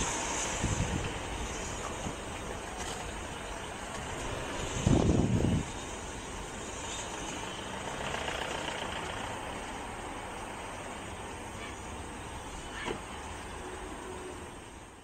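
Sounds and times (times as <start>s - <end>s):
steam locomotive moving slowly: 0.0s - 15.0s.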